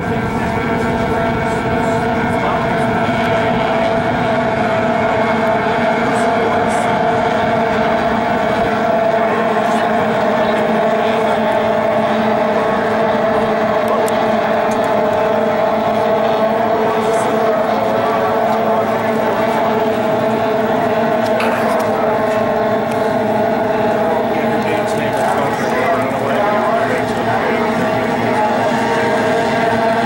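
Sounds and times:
racing boat engines whining: 0:00.0 - 0:30.0.

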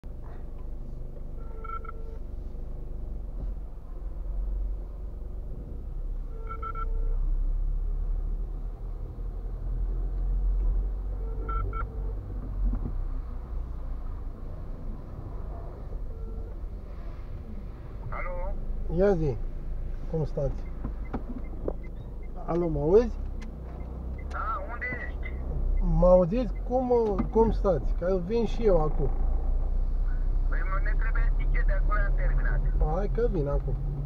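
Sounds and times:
car engine and tyres rumbling: 0:00.0 - 0:34.0
phone ring tone: 0:01.4 - 0:02.2.

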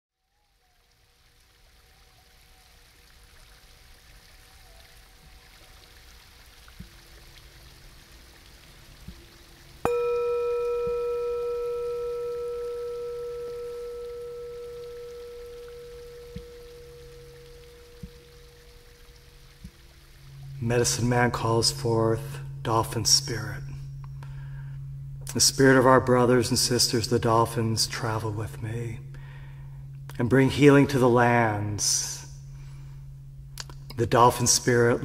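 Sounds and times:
faint steady hiss: 0:00.2 - 0:35.0
singing bowl ringing: 0:09.8 - 0:35.0.

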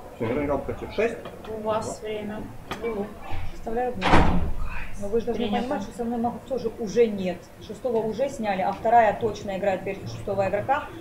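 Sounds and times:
loud thump: 0:04.0 - 0:04.6
person speaking: 0:04.6 - 0:06.0.

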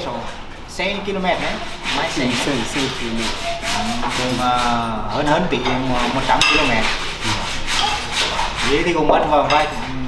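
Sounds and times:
scraping and rubbing noises: 0:00.0 - 0:10.0.

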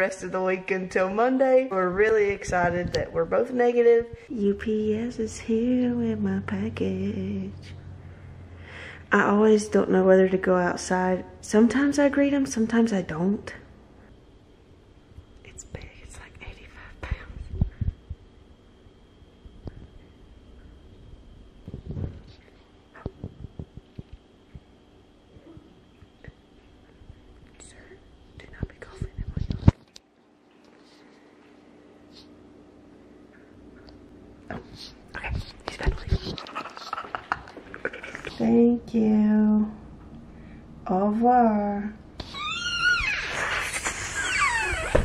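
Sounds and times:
woman whispering: 0:15.5 - 0:17.7, 0:27.5 - 0:29.6, 0:34.5 - 0:37.0.

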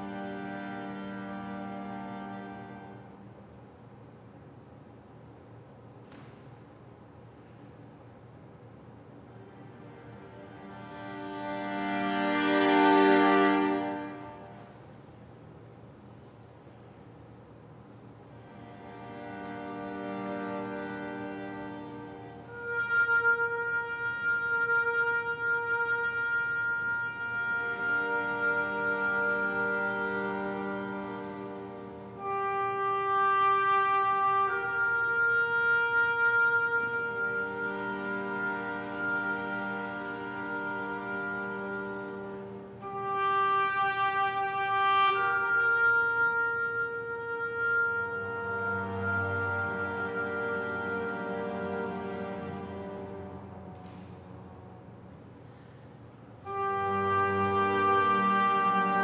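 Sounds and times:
chamber orchestra sustained notes: 0:00.0 - 0:05.9, 0:07.0 - 0:59.0.

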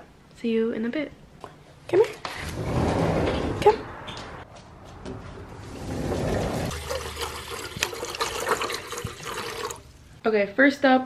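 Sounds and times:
water running into metal bowl: 0:06.2 - 0:09.9.

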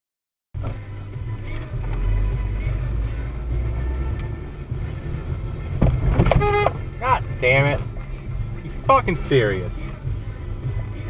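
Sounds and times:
engine and road rumble: 0:00.6 - 0:11.0
faint music playing: 0:00.6 - 0:11.0
bus hitting car thump: 0:05.8 - 0:06.8.

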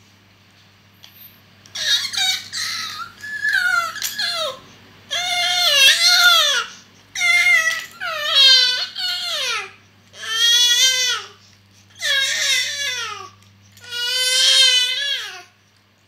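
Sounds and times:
infant crying: 0:01.8 - 0:11.4, 0:12.0 - 0:15.5.

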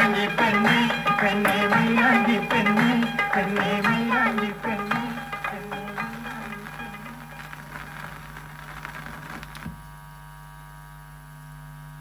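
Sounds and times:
song from gramophone record: 0:00.0 - 0:09.8
mains hum: 0:00.0 - 0:12.0.

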